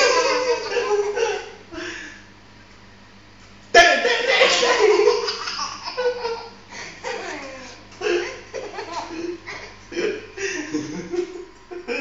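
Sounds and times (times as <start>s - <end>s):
toddler laughing loudly: 0.0s - 1.6s, 4.0s - 9.8s
man laughing: 0.0s - 1.9s, 3.8s - 12.0s.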